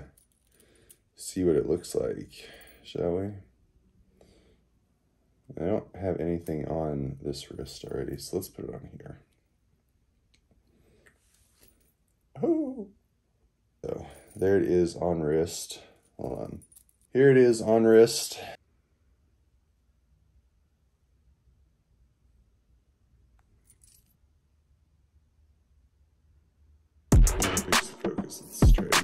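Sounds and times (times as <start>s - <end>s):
chain bracelets clinking: 0.0s - 1.1s, 11.2s - 12.2s, 16.0s - 17.2s, 23.5s - 24.2s.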